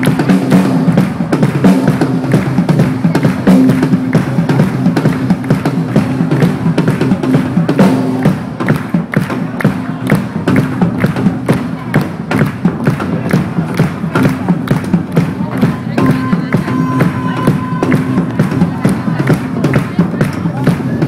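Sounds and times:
drum kit beat: 0.0s - 21.0s.

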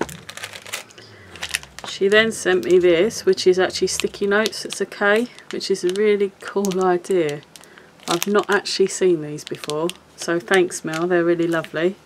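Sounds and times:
plastic packaging crinkling: 0.0s - 11.9s.

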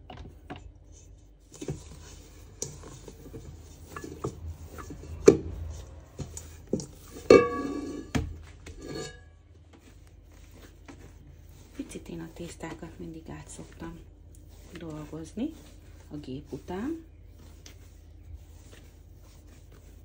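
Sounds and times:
metal bowl scraping: 1.0s - 9.5s, 10.3s - 20.0s
metal bowl clanks: 2.8s - 9.4s.

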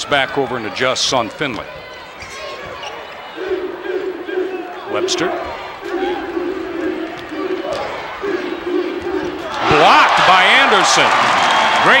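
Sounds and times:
arena crowd noise: 0.0s - 12.0s
crowd shouting: 1.7s - 12.0s.

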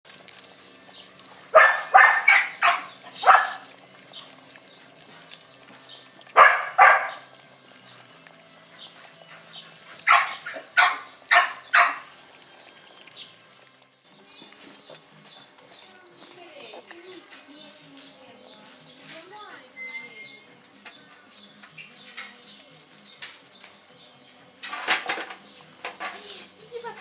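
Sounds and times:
dog barking: 1.5s - 3.7s, 6.4s - 7.3s, 10.0s - 12.1s.

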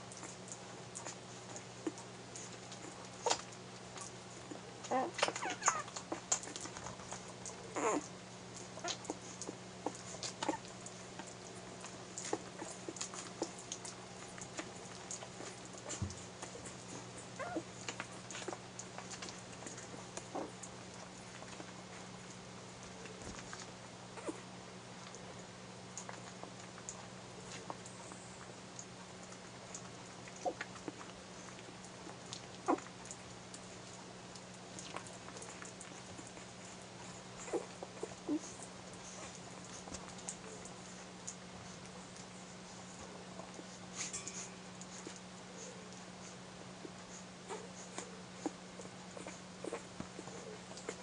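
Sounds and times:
puppies suckling: 0.0s - 51.0s
steady low hum: 0.0s - 51.0s
puppy whimpering: 1.8s - 11.0s, 11.8s - 21.7s, 24.2s - 24.5s, 30.3s - 31.0s, 32.6s - 32.9s, 34.8s - 46.3s, 47.1s - 51.0s
puppies squeaking: 4.9s - 6.2s, 7.7s - 8.1s, 16.9s - 18.5s.

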